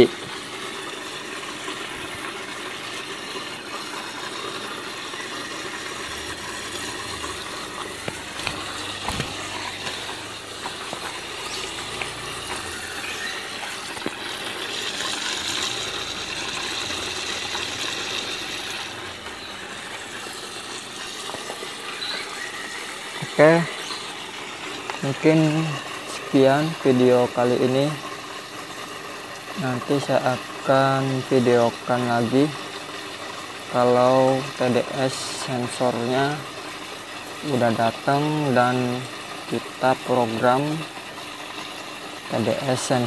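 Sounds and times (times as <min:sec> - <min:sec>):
running water: 0:00.0 - 0:43.0.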